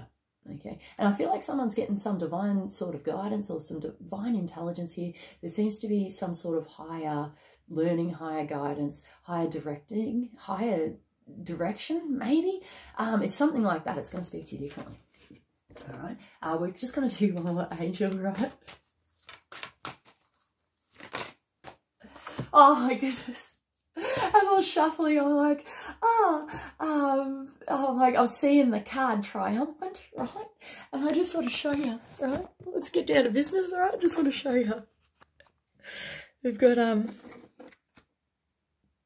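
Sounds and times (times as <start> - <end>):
cards being shuffled: 18.0 - 22.5, 31.0 - 32.6, 37.0 - 38.1.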